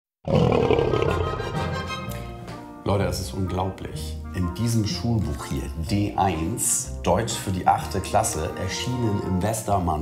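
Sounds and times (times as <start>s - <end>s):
lion roaring: 0.2s - 1.4s.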